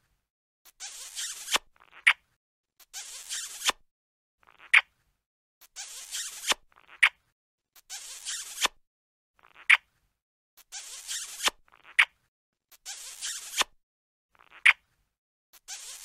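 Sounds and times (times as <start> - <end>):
cartoon wet smooching noise: 2.8 - 3.8, 5.8 - 7.1, 7.8 - 8.8, 10.7 - 12.0.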